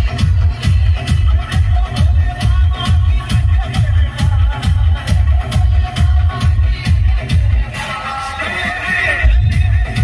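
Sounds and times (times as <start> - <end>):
loud electronic dance music: 0.0 - 10.0.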